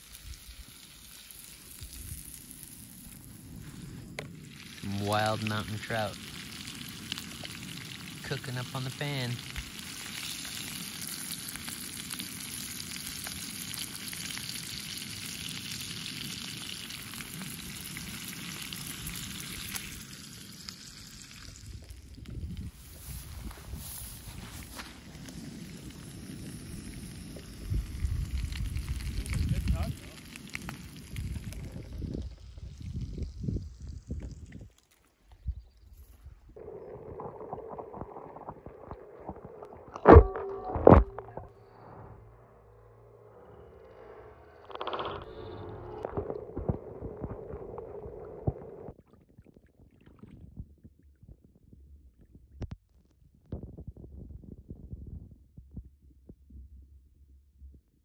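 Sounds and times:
fish sizzling in a pan: 0.0s - 34.2s.

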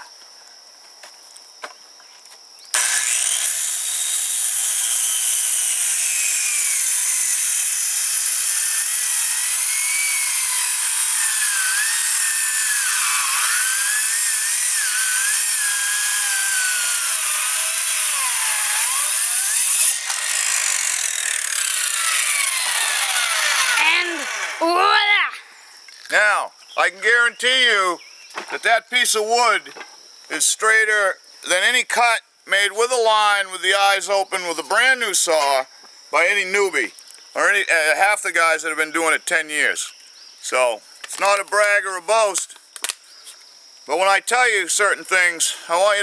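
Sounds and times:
power saw cutting wood: 2.8s - 24.9s.

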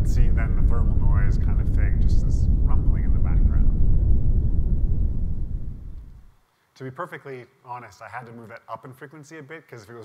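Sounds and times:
low rumble: 0.0s - 6.3s.

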